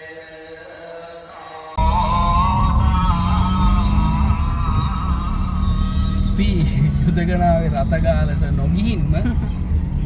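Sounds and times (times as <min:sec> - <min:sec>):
car engine and tyre rumble: 0:01.8 - 0:10.0.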